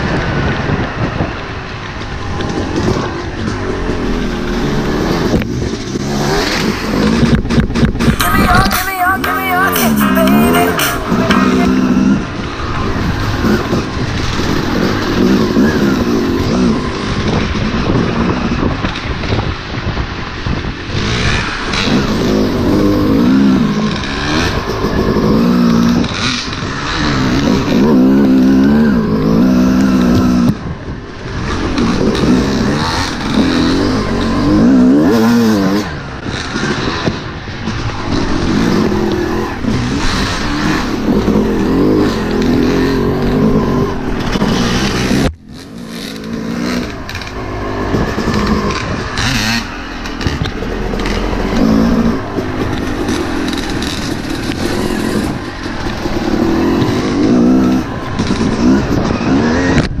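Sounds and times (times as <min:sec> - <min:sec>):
dirt bike engine revving: 0:02.0 - 1:00.0.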